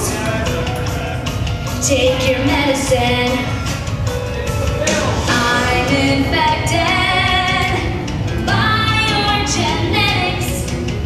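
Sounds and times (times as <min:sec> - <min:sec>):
backing music: 0:00.0 - 0:11.0
woman singing: 0:01.8 - 0:03.7, 0:05.3 - 0:10.7.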